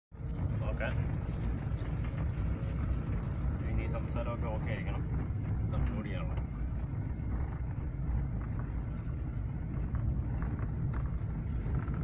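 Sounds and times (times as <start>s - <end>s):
car engine and tyres rumble: 0.2s - 12.0s
voices: 0.3s - 12.0s.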